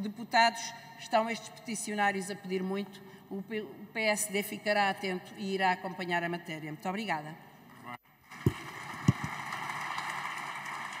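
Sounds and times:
crowd applauding: 0:08.3 - 0:11.0.

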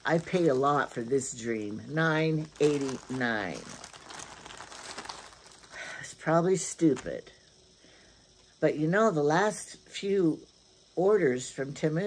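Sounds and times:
plastic bag crinkling: 0:00.0 - 0:06.0, 0:06.6 - 0:07.2.

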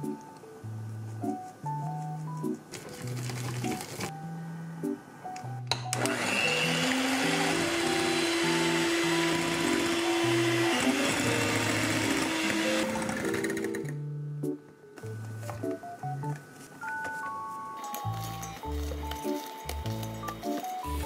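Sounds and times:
background music: 0:00.0 - 0:21.0
electric hand mixer whipping: 0:05.9 - 0:14.0.

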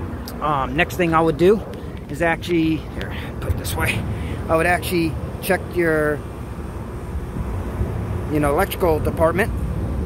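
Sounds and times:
heat pump unit rumbling: 0:00.0 - 0:10.0.

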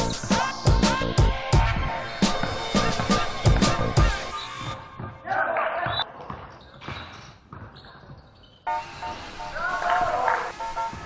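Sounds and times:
music: 0:00.0 - 0:05.5, 0:08.7 - 0:11.0
basketball bouncing on hardwood: 0:02.3 - 0:04.2, 0:05.8 - 0:08.3.

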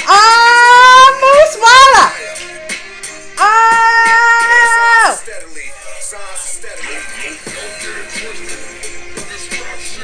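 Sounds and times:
woman exclaiming excitedly: 0:00.0 - 0:02.2, 0:03.4 - 0:05.2.

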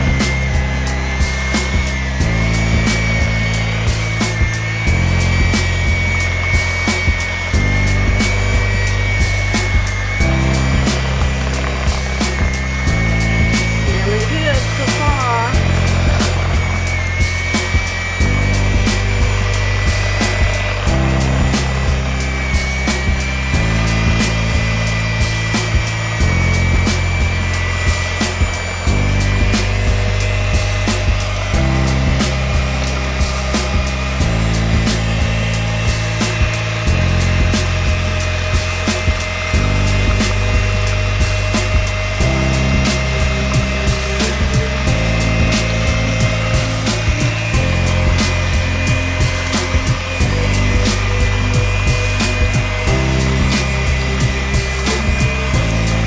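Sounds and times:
background music with bass: 0:00.0 - 0:56.0
electric hand mixer whining: 0:00.0 - 0:56.0.

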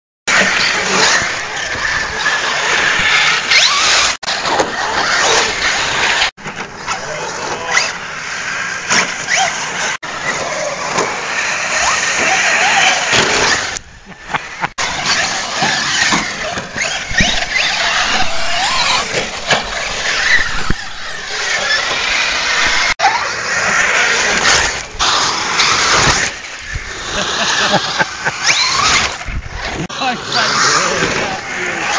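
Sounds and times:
toy car motors whining: 0:00.3 - 0:31.9.

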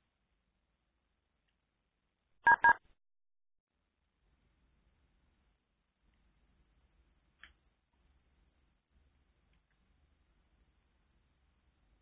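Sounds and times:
telephone keypad beeps: 0:02.5 - 0:02.8.

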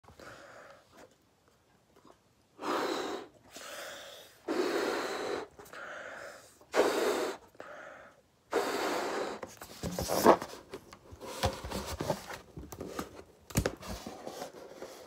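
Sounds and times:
breath puffs into balloon: 0:06.7 - 0:07.5, 0:08.5 - 0:09.6.

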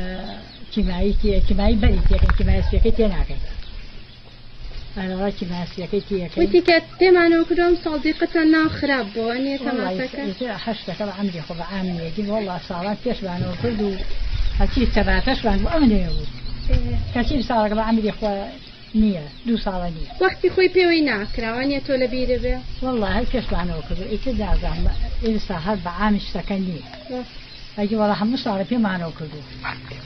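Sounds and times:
woman speaking: 0:00.0 - 0:03.5, 0:05.0 - 0:29.5
woman talking: 0:00.0 - 0:03.5, 0:04.9 - 0:29.6
low background rumble: 0:00.0 - 0:30.0.

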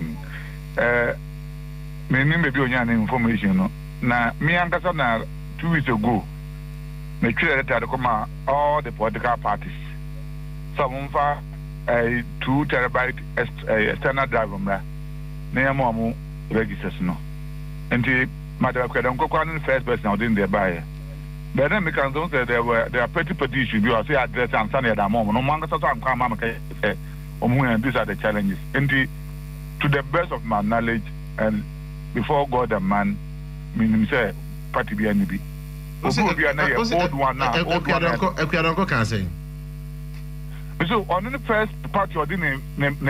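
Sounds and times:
man speaking on telephone: 0:00.0 - 0:01.2, 0:02.1 - 0:06.3, 0:07.2 - 0:10.0, 0:10.8 - 0:14.8, 0:15.6 - 0:17.2, 0:17.9 - 0:20.8, 0:21.5 - 0:29.1, 0:29.8 - 0:33.2, 0:33.8 - 0:35.4, 0:36.0 - 0:39.4, 0:40.8 - 0:43.0
electrical mains hum: 0:00.0 - 0:43.0
person speaking: 0:36.0 - 0:39.4.

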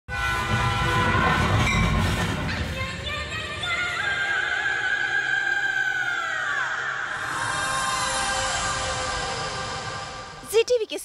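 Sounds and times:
train horn: 0:00.1 - 0:02.8
train rumble in motion: 0:00.1 - 0:04.1.

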